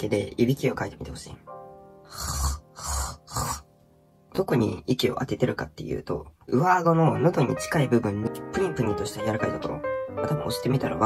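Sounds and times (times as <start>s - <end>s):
mouth snores: 2.1s - 3.7s.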